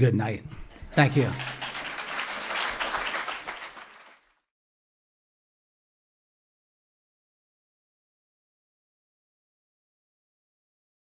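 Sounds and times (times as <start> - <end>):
audience applauding: 0.7 - 4.4.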